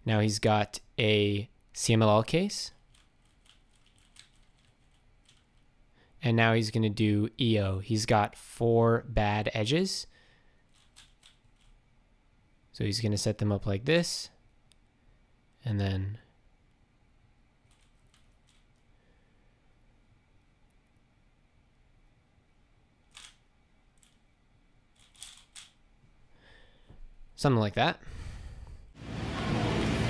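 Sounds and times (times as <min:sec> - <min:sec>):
puzzle cube layers clicking: 0:02.8 - 0:05.6, 0:10.7 - 0:11.8, 0:17.7 - 0:18.8, 0:23.1 - 0:23.4, 0:25.0 - 0:25.8.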